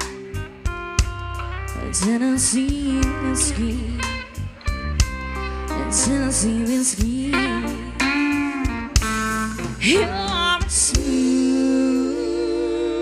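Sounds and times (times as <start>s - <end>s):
country band playing: 0.0s - 13.0s
steel guitar: 0.0s - 13.0s.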